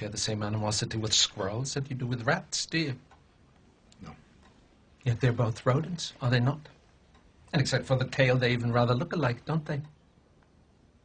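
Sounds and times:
pendulum clock ticking: 0.7 - 10.0.

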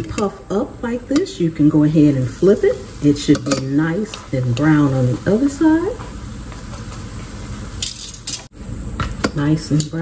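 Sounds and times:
butter sizzling in a skillet: 1.9 - 8.4
metal tongs clicking on pan: 3.3 - 4.8.

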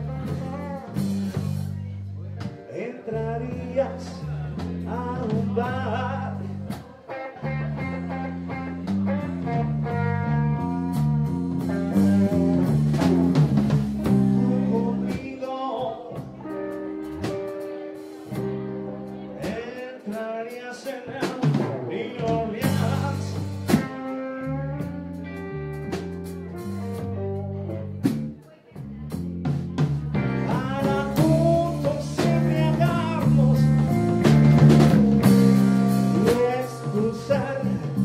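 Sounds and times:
man singing: 0.0 - 13.2, 14.0 - 18.5, 19.1 - 24.9, 30.1 - 38.0
electric bass line: 0.0 - 15.4, 16.1 - 19.6, 21.5 - 38.0
drum kit: 0.0 - 38.0.

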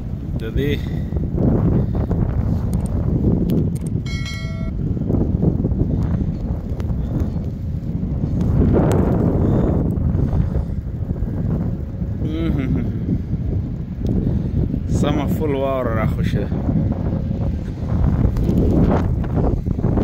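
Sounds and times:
wind buffeting microphone: 0.0 - 20.0
short high beep: 4.1 - 4.8.

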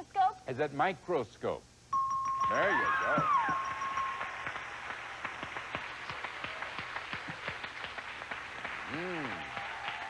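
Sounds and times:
audience applauding: 2.4 - 10.0.

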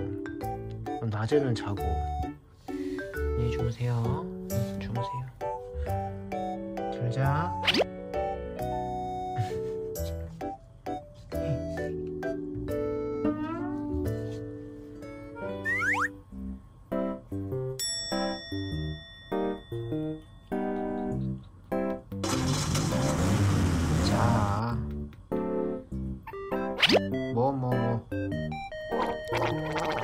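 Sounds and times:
playful plucky music: 0.0 - 2.4, 3.0 - 16.2, 19.8 - 22.9, 26.2 - 30.0
cartoon boing effects: 15.6 - 16.1, 28.9 - 30.0
rough noisy burst: 22.2 - 24.5.

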